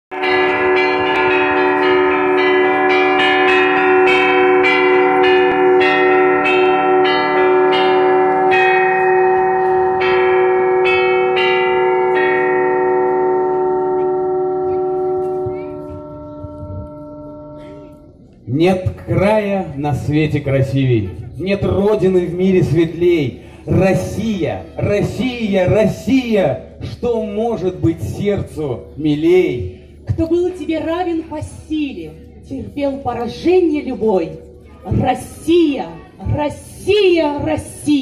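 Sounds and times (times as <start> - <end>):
bell-like chiming: 0.1 - 18.2.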